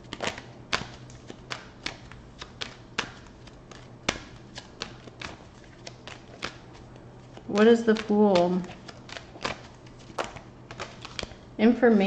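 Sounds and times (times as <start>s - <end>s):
card deck shuffled by hand: 0.0s - 11.4s.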